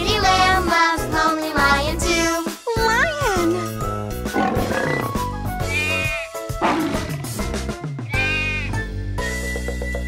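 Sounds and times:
upbeat children's song music: 0:00.0 - 0:10.0
rough animal-like vocal sound: 0:05.9 - 0:07.3.

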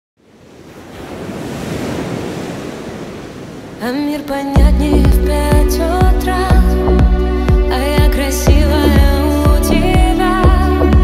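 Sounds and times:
woman singing: 0:03.8 - 0:11.0.

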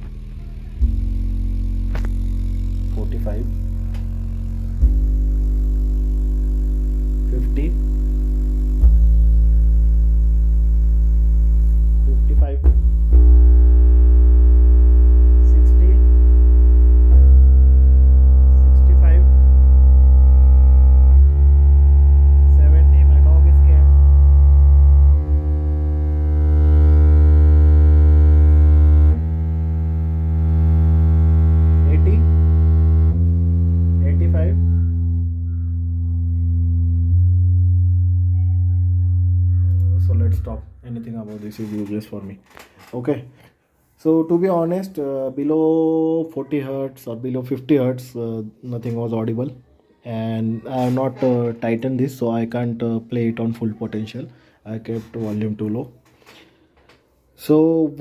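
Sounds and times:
subwoofer low test tones: 0:00.0 - 0:42.5.

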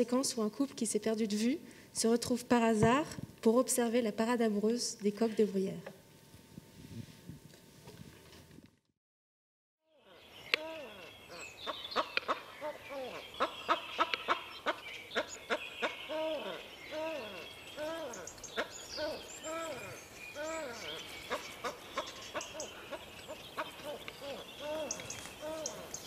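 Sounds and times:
bird calls rising and falling: 0:10.0 - 0:26.0
bird clicks: 0:12.1 - 0:12.4.

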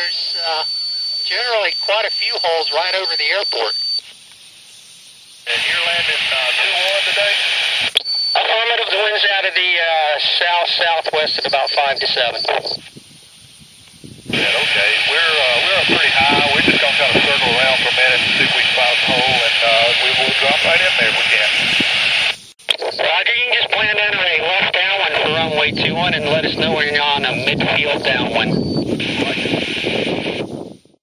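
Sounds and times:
voices over radio: 0:00.0 - 0:04.1, 0:05.5 - 0:12.9, 0:14.3 - 0:30.4.

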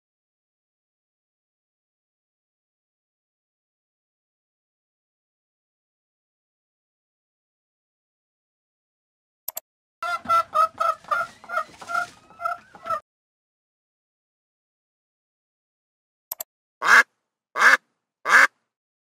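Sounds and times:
duck quacking: 0:10.0 - 0:13.0, 0:16.8 - 0:18.5
hen clucking: 0:10.0 - 0:13.0.

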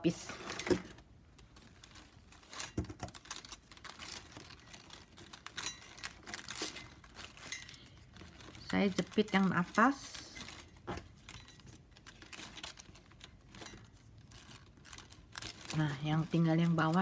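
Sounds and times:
plastic strapping rustling: 0:00.0 - 0:17.0.

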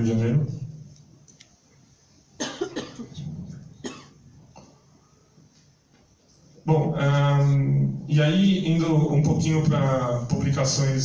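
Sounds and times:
person coughing: 0:02.4 - 0:04.2.

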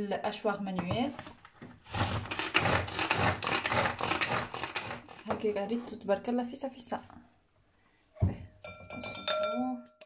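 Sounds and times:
pull-cord food chopper: 0:01.9 - 0:05.2.

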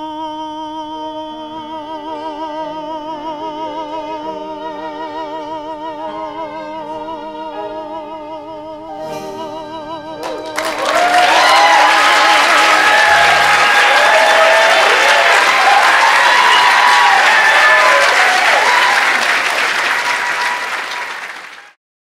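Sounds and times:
man singing with vibrato: 0:00.0 - 0:15.0
audience applause: 0:10.2 - 0:21.8
audience cheering: 0:10.2 - 0:21.8.

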